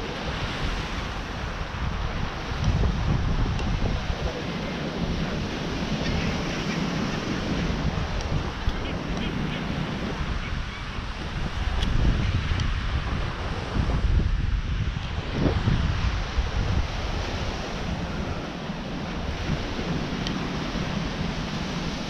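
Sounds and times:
ocean surf: 0.0 - 22.0
wind buffeting microphone: 0.0 - 22.0.

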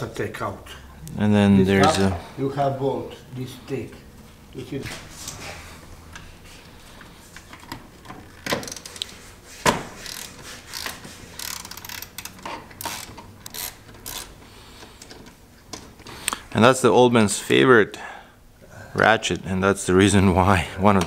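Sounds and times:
socket ratchet clicking: 10.0 - 14.4.

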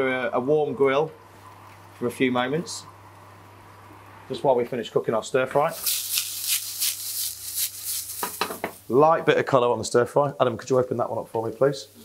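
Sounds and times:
vegetables sizzling in oil: 5.7 - 8.9.

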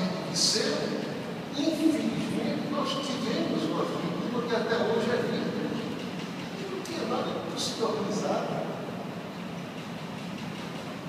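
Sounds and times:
large hall background noise: 0.0 - 11.0.

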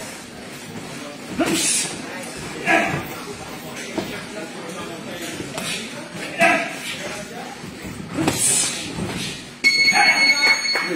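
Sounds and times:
muffled boxing sparring: 5.2 - 9.6.

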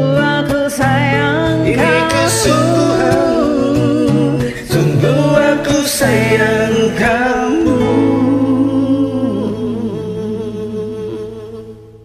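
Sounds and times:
backing track with guitar: 0.0 - 12.0
man and woman singing duet: 0.0 - 12.0.

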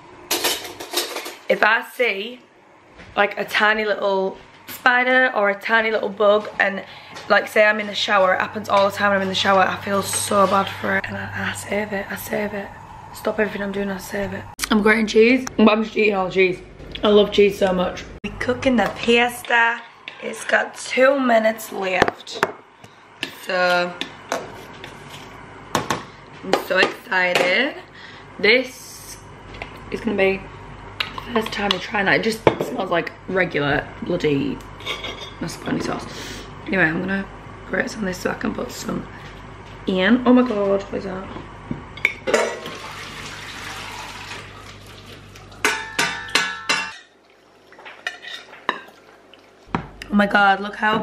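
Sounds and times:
utensils and dishes knocking: 45.6 - 47.0
ringing metal saucepan clanks: 45.6 - 47.1.

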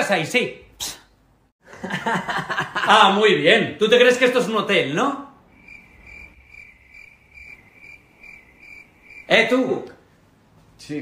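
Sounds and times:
cricket chirping: 5.4 - 9.4.

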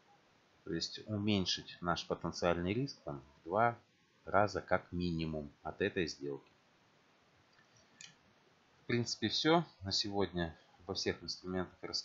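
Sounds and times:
man speaking: 0.7 - 6.5, 8.9 - 12.0.

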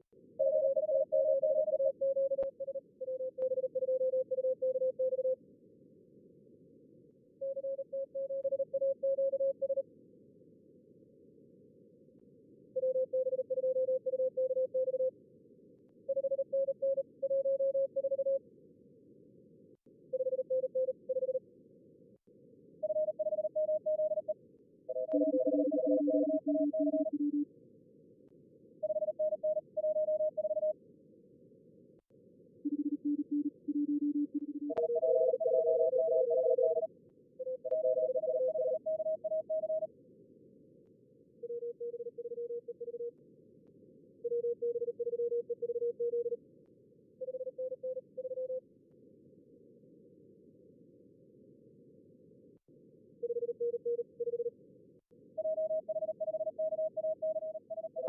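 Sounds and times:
morse code beeps: 0.4 - 5.4, 25.0 - 27.4, 32.7 - 36.9, 37.5 - 39.9.

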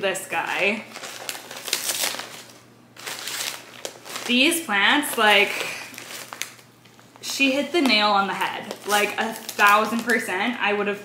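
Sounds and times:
paper wrapping crinkling: 0.4 - 10.5.

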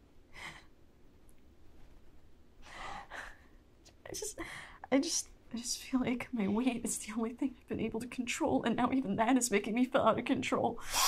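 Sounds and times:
person breathing: 0.3 - 0.8, 2.6 - 3.6.

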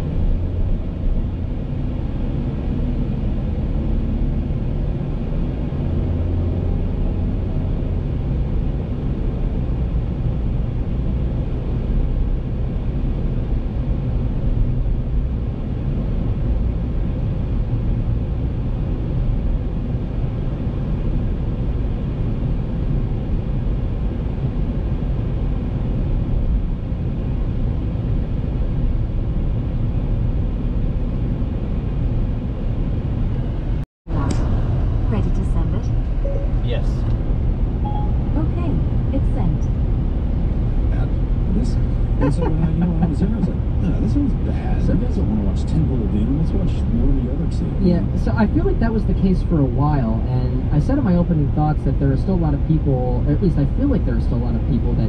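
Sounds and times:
car interior road rumble: 0.0 - 55.0.

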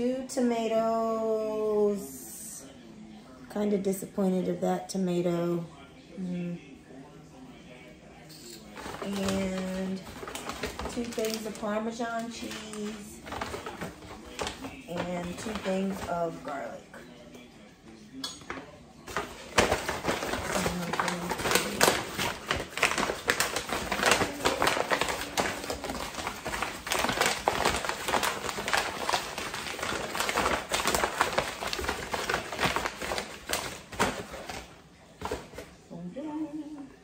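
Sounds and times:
paper bag rustling and crinkling: 8.5 - 16.8, 19.0 - 35.8.

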